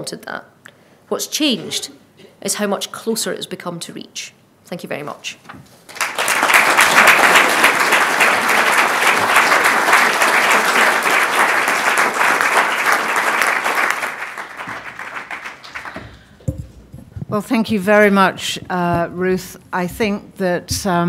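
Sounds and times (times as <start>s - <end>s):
audience applauding: 5.9s - 16.4s.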